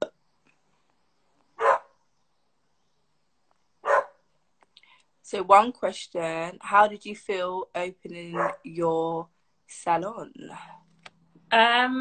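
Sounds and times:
dog barking: 1.6 - 1.9, 3.8 - 4.2, 8.4 - 8.6.

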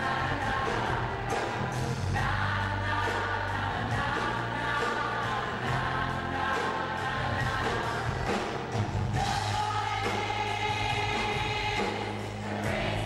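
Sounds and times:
live band music: 0.0 - 13.0
voices singing together: 0.0 - 13.0.

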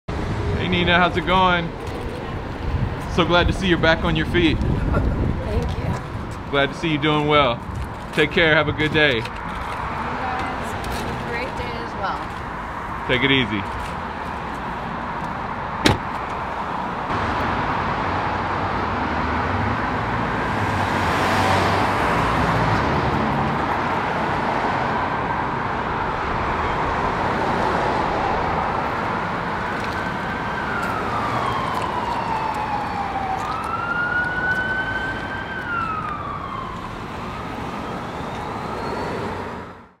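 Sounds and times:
city street traffic: 0.1 - 40.0
sharp knock: 15.8 - 16.2
emergency siren wailing: 17.4 - 40.0.

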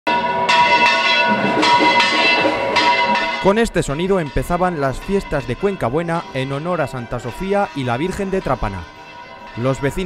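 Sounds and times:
church bells pealing: 0.1 - 10.0.

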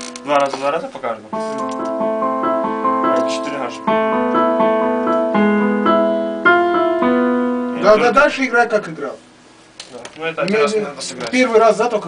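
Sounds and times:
chords on a digital keyboard: 0.0 - 8.7.

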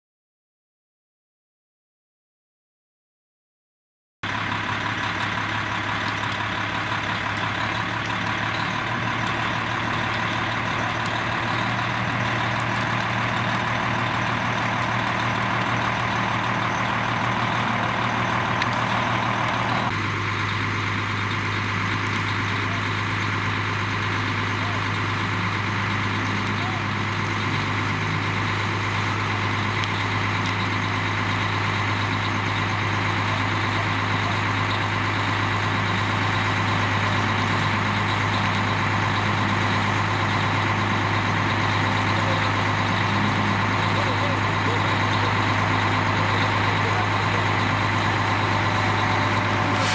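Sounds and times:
fire engine engine droning: 4.2 - 49.9.

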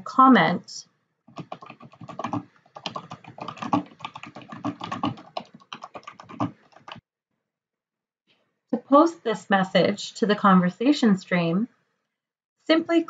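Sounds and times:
typing on computer keyboard: 1.3 - 7.0.

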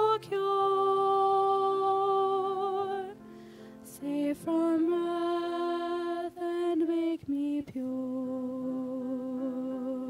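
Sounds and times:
vocal quartet singing: 0.0 - 3.2, 3.9 - 10.0.

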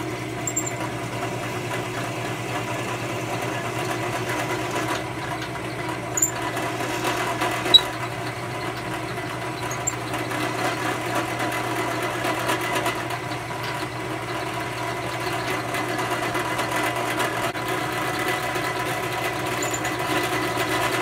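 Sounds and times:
drill press drilling wood: 0.0 - 21.0.

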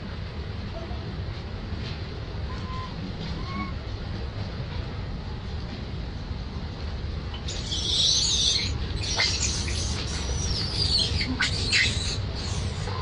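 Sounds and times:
macaque screeching: 7.4 - 13.0.

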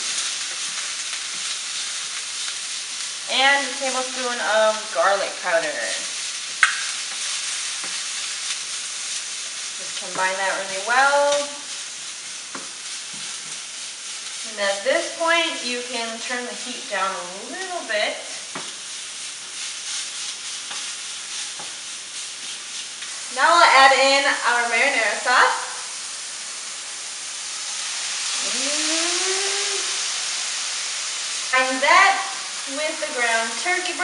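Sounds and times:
meat sizzling in a frying pan: 0.0 - 34.0
spatula scraping pan: 7.1 - 24.0
sauce poured into pan: 25.6 - 32.7.

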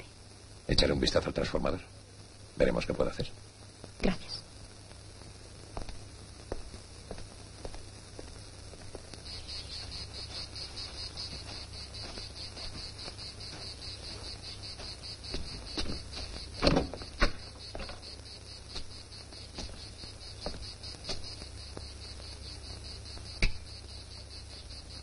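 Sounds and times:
insects chirping: 0.0 - 25.0
footsteps through dry brush: 5.7 - 18.0
loud knocks: 15.3 - 18.0.

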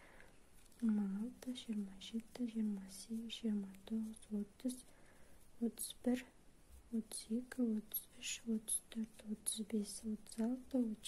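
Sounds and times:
woman speaking softly: 0.8 - 4.9, 5.6 - 11.0.

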